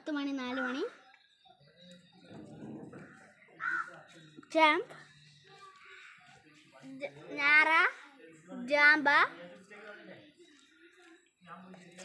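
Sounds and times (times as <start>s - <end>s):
crow cawing: 3.0s - 4.0s.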